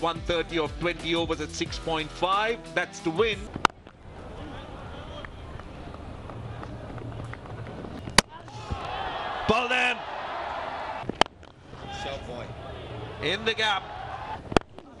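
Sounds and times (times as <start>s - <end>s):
stadium crowd noise: 3.3s - 15.0s.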